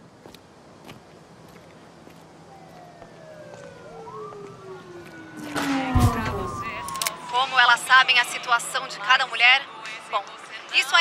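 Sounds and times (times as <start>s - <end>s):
police siren wailing: 2.4s - 9.9s.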